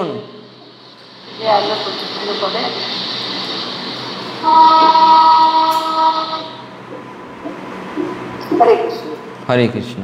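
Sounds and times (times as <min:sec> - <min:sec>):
faint hum: 0:00.0 - 0:10.0
loud horn-like tone: 0:04.2 - 0:06.8.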